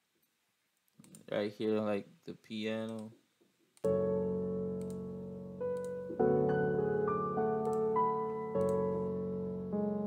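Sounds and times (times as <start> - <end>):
piano playing sustained chords: 3.9 - 10.0.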